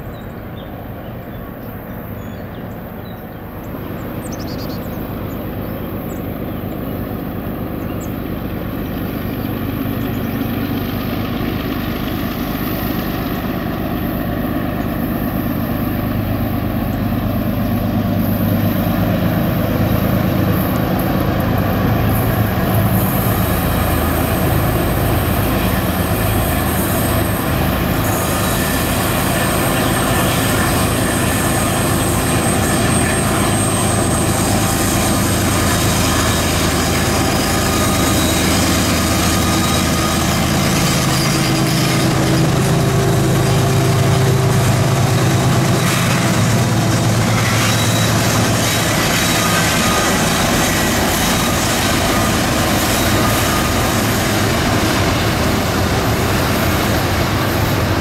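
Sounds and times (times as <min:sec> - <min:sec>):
freight train passing: 0:00.0 - 0:58.0
locomotive engines rumbling: 0:00.0 - 0:58.0.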